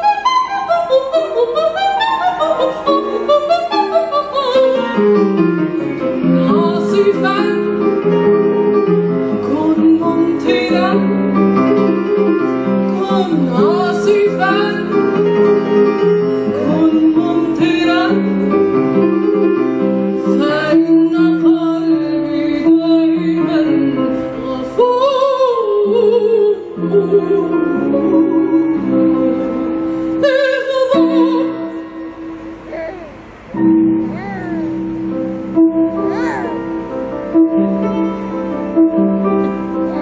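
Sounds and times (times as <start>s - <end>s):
piano accompaniment: 0.0s - 40.0s
woman singing operatic soprano: 0.1s - 5.1s, 6.2s - 7.8s, 9.4s - 11.2s, 12.9s - 14.9s, 16.6s - 18.3s, 20.2s - 32.1s.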